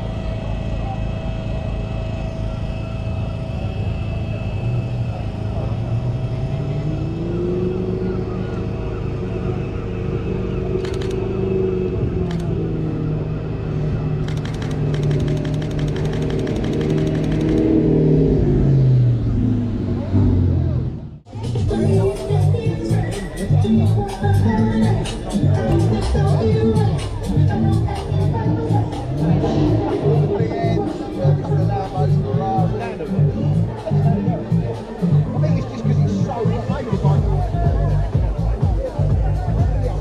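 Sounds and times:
sports car engine revving: 0.0s - 40.0s
camera shutter clicks: 14.2s - 17.7s.

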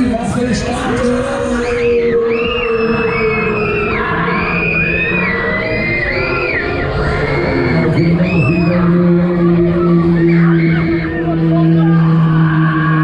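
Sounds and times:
riders screaming: 0.8s - 13.0s.

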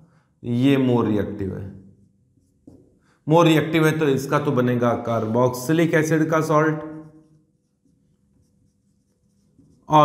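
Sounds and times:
man speaking: 0.4s - 1.7s, 3.3s - 7.0s
marker pen on whiteboard: 1.8s - 3.2s, 5.1s - 10.0s.

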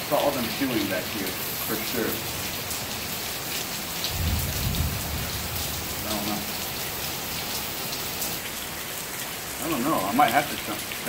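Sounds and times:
heavy rain on water: 0.0s - 11.0s
thunder rumble: 4.0s - 6.7s.

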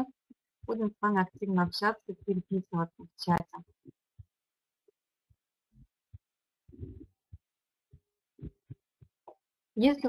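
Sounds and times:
faint low thumps: 5.8s - 9.3s.

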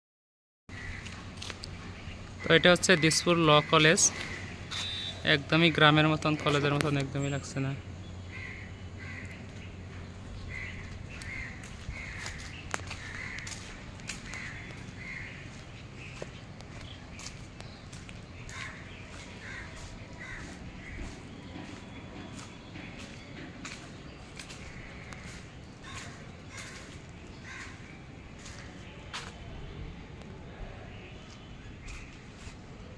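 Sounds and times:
crow cawing: 0.7s - 1.2s, 2.4s - 5.2s, 8.3s - 16.3s, 18.4s - 21.8s, 24.4s - 28.7s
short bird calls: 4.1s - 5.3s.

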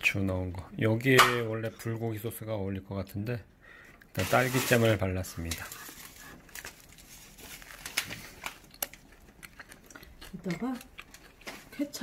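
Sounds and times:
paper wrapper rustling: 4.2s - 9.4s.

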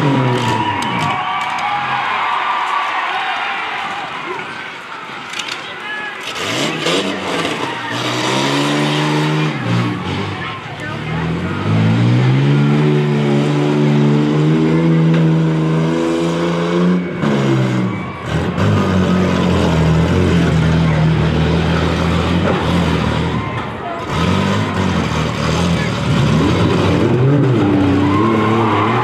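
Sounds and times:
car engine revving hard: 0.0s - 0.8s, 6.2s - 29.0s.

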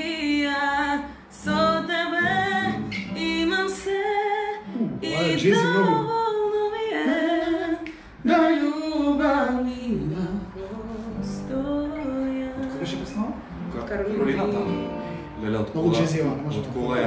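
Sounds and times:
woman singing: 0.0s - 13.1s.

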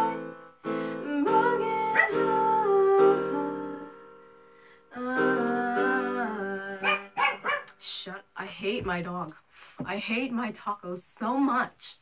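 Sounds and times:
electronic keyboard chord: 0.0s - 7.3s
dog barking: 6.8s - 7.7s.

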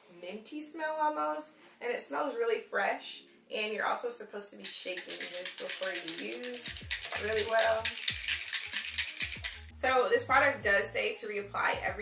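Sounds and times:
spray bottle rattling when shaken: 4.6s - 9.7s.

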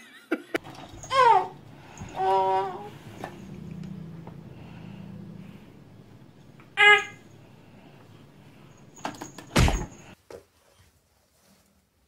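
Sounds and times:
faint low hum: 0.6s - 10.2s
baby squealing: 0.9s - 3.0s, 6.7s - 7.3s.

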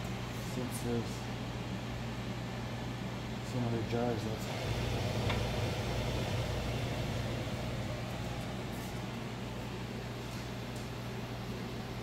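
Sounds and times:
low mechanical hum with hiss: 0.0s - 12.0s.

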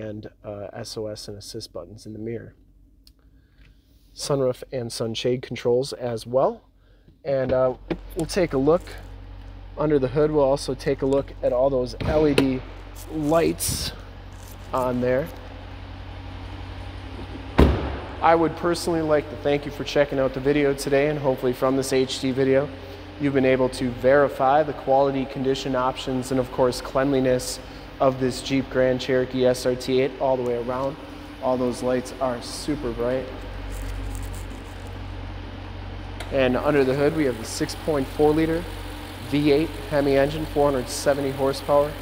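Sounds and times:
steady low hum: 0.0s - 42.0s
car engine idling: 6.7s - 42.0s
car door slamming shut: 17.2s - 18.2s.

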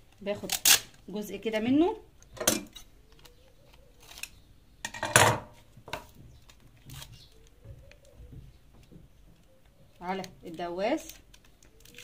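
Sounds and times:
packing tape ripping off roll: 10.8s - 12.0s.

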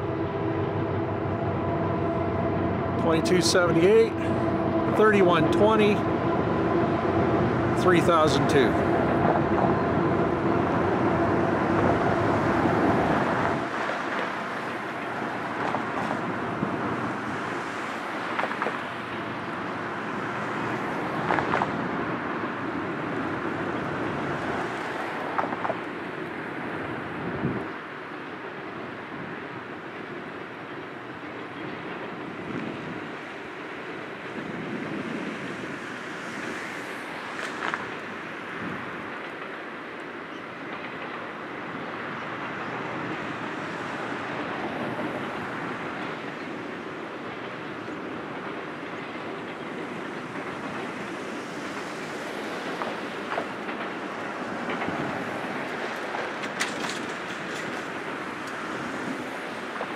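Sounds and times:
distant train rolling over bridge: 0.0s - 59.9s.

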